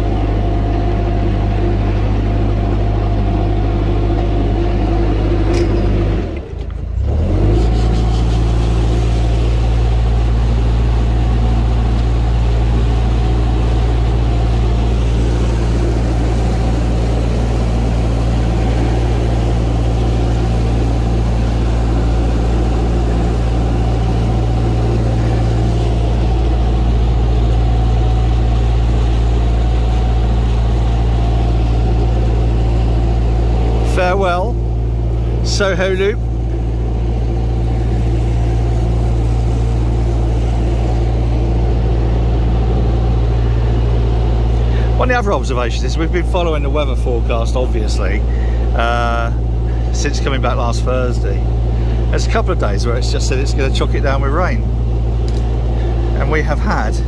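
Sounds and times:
diesel boat engine running: 0:00.0 - 0:57.0.

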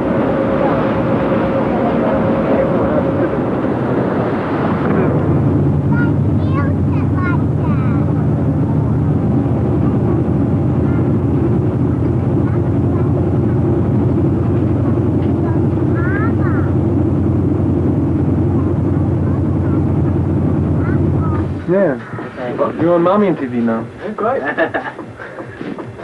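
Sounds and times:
wind rushing: 0:00.0 - 0:23.2
boat engine drone: 0:00.0 - 0:26.0.

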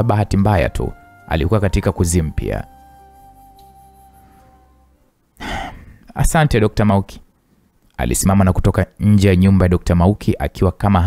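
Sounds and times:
soft background music: 0:00.0 - 0:05.6
person sighing: 0:05.4 - 0:06.0.

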